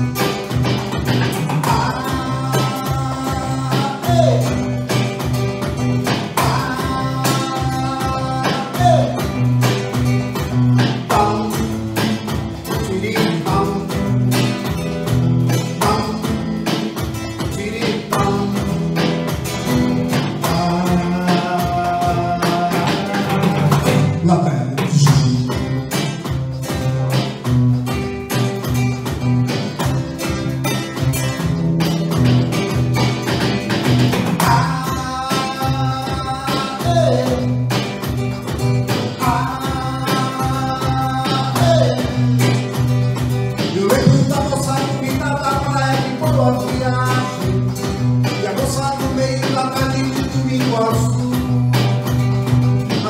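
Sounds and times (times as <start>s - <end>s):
acoustic guitar strummed: 0.0s - 53.0s.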